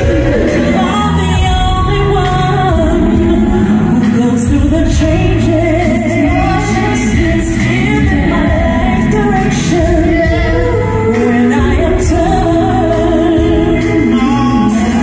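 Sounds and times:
live rnb band music: 0.0 - 15.0
man singing lead: 0.0 - 15.0
women singing: 0.0 - 15.0.

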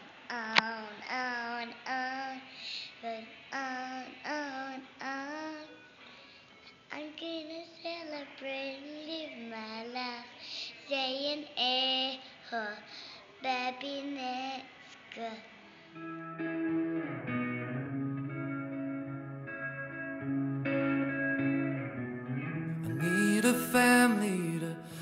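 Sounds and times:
young girl singing: 0.3 - 15.5, 22.8 - 25.0.

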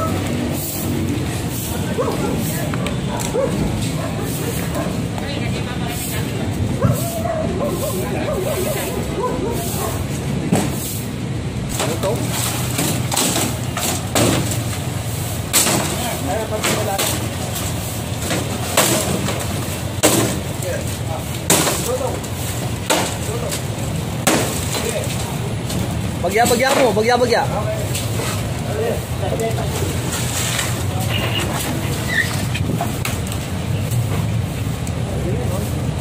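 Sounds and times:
street noise: 0.0 - 36.0
hammer striking wooden frame: 12.7 - 14.6.

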